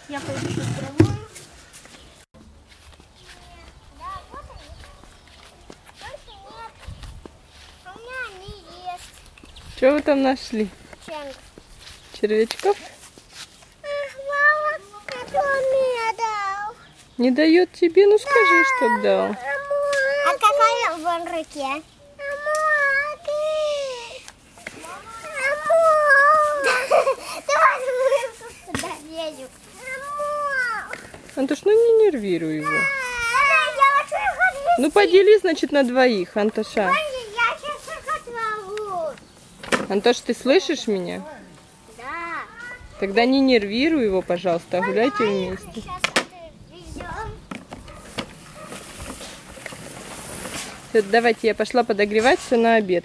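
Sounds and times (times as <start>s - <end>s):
small child's voice: 3.2s - 9.2s, 11.0s - 11.5s, 13.8s - 16.9s, 18.2s - 31.0s, 32.6s - 35.1s, 36.9s - 39.2s, 41.9s - 43.0s, 44.8s - 47.4s
child whining cry: 18.3s - 20.4s, 25.1s - 28.4s, 32.7s - 33.8s.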